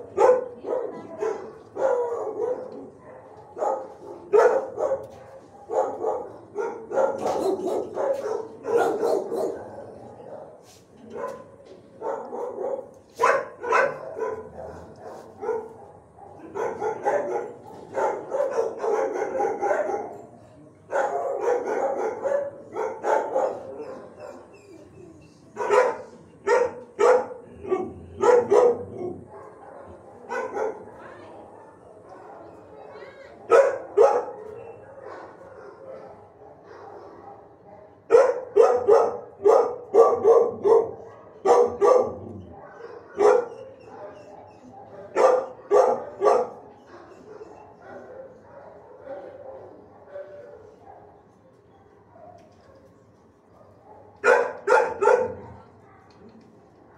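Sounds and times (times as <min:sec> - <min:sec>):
dogs barking: 0:00.0 - 0:20.3, 0:20.9 - 0:24.5, 0:25.6 - 0:51.2, 0:53.6 - 0:56.2.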